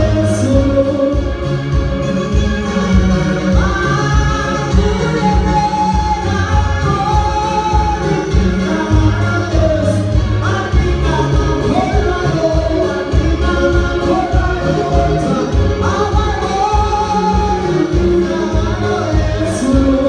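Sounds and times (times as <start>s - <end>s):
keyboard playing chords: 0.0s - 20.0s
man singing into a microphone: 0.0s - 20.0s.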